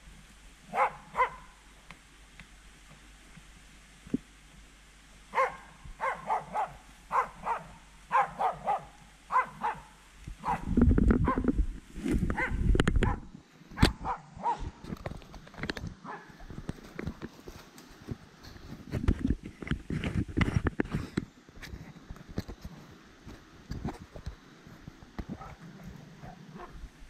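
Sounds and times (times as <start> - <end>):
rustling in dry leaves: 0.0 - 27.0
dogs barking: 0.7 - 1.6, 5.3 - 11.5, 12.3 - 14.8, 16.0 - 16.4, 25.3 - 25.6, 26.2 - 26.8
camera handling rumbling and knocking: 10.7 - 13.2, 14.7 - 17.4, 18.1 - 22.7.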